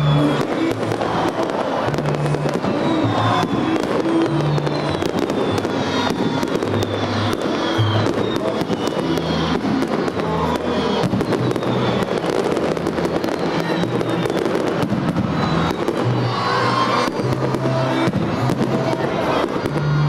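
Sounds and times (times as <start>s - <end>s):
fireworks bangs and crackles: 0.0s - 20.0s.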